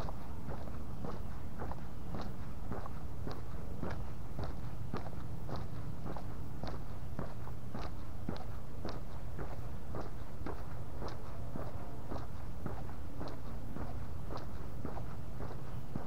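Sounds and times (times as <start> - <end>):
footsteps on paved street: 0.0 - 16.0
steady low rumble: 0.0 - 16.0.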